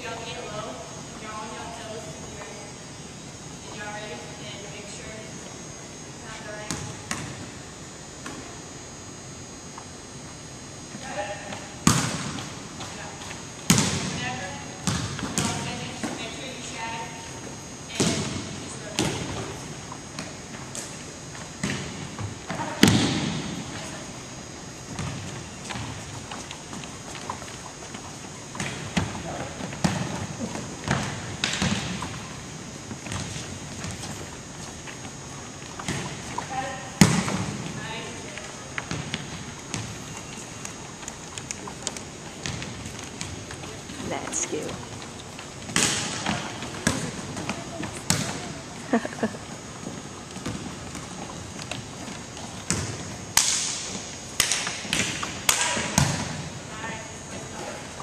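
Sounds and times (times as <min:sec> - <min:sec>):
volleyballs smacking on hardwood floor: 0:11.5 - 0:16.3, 0:24.9 - 0:32.2, 0:35.6 - 0:44.0, 0:44.7 - 0:48.6, 0:49.8 - 0:56.5.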